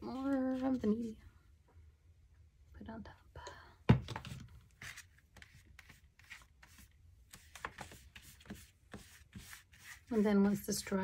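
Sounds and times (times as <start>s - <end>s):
paintbrush brushing on paper: 4.8s - 11.0s.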